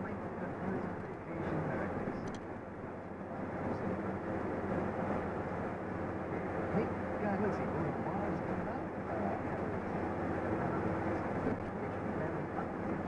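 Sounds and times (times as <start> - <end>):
engine and road noise in cab: 0.0 - 13.0.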